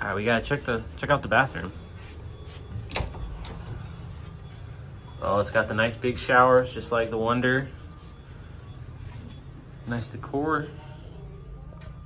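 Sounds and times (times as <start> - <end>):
steady low background hum: 0.0 - 12.0.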